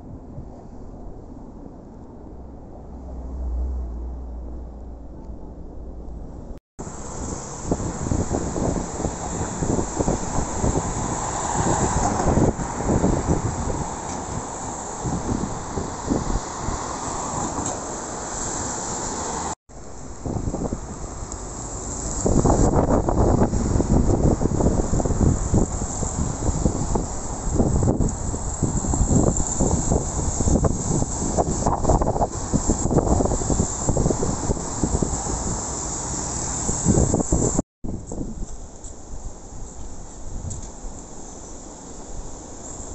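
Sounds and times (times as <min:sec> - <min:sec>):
street traffic: 0:00.0 - 0:42.9
wind buffeting microphone: 0:06.8 - 0:17.8, 0:19.9 - 0:41.0.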